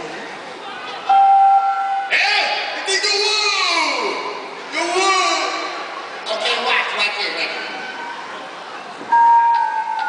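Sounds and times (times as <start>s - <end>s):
performer singing in an arena: 0.0s - 10.0s.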